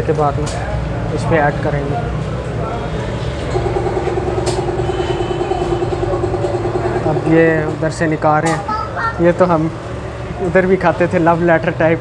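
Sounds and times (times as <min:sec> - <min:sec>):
even-pitched drone: 0:02.8 - 0:08.2
low motor hum: 0:02.9 - 0:08.2.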